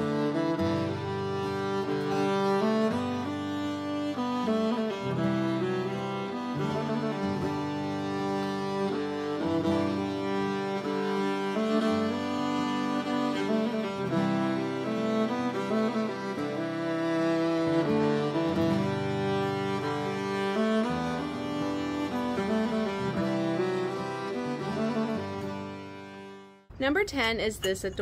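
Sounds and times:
slow bowed strings music: 0.0 - 26.7.

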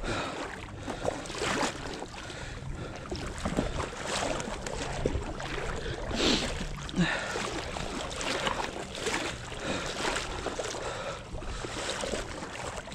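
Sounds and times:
shallow water swishing and lapping: 0.0 - 12.9.

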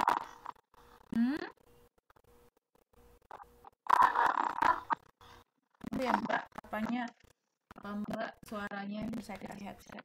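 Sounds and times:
garbled microphone audio: 0.0 - 10.0.

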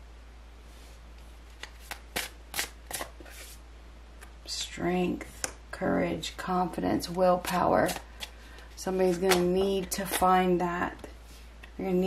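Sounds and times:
cards being shuffled: 1.5 - 3.6, 7.4 - 10.3.

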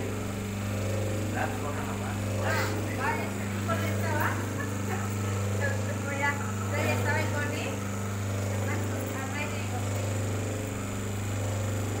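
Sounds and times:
electric motor humming: 0.0 - 12.0.

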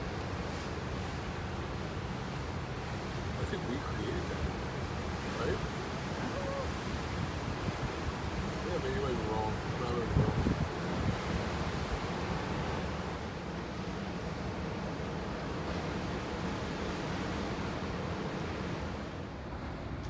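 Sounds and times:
breaking surf: 0.0 - 20.0
wind: 0.0 - 20.0
wind buffeting microphone: 9.4 - 13.2.

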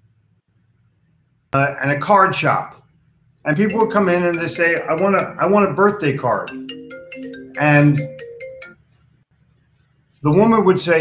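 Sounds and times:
electronic ringtone melody: 3.5 - 8.8.

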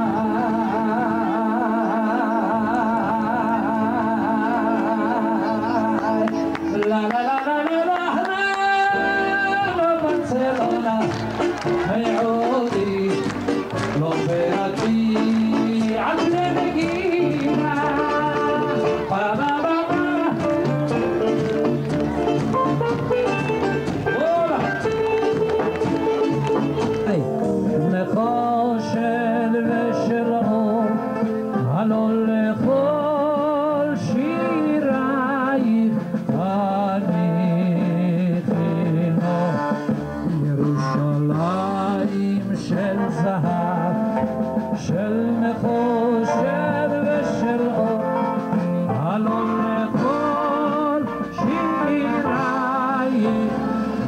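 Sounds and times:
instrumental accompaniment: 0.0 - 54.0
man singing with vibrato: 0.0 - 54.0.

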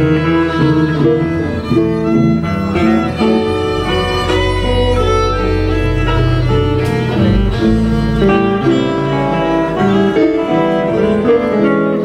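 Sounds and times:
bowed fiddle melody: 0.0 - 12.0
electric guitars: 0.0 - 12.0
low bass note: 3.6 - 11.0
drums: 6.7 - 8.6.

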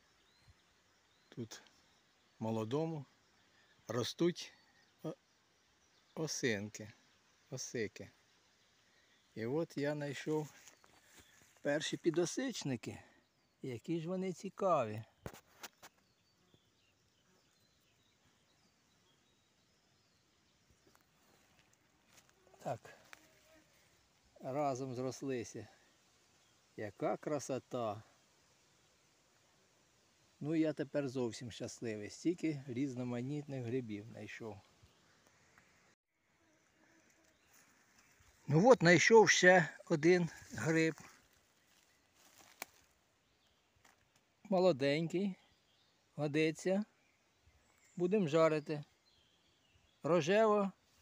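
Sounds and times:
faint woodland ambience: 0.0 - 51.0
faint rustling: 10.1 - 12.4, 40.3 - 44.2
fungus snapping off log: 42.4 - 42.9.

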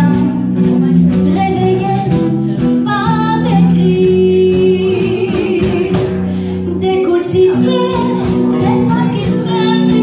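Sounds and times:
small band with guitars: 0.0 - 10.0.

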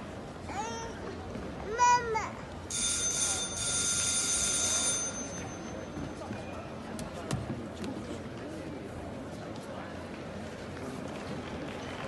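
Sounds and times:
electric bell ringing: 2.7 - 6.0.

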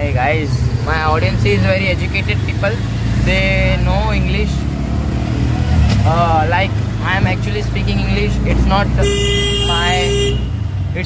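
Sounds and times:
auto rickshaw engine running: 0.0 - 11.0
vehicle horn: 9.0 - 10.6.

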